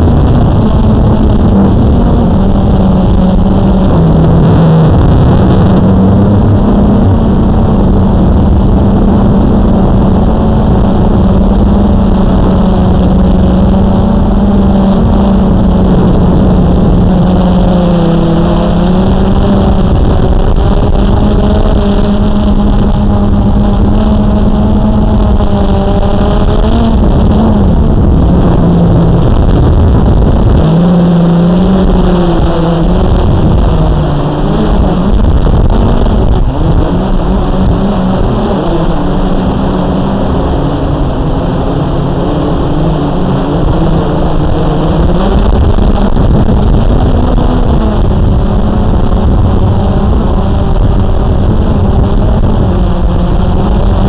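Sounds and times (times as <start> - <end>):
quadcopter motors buzzing: 0.0 - 54.0.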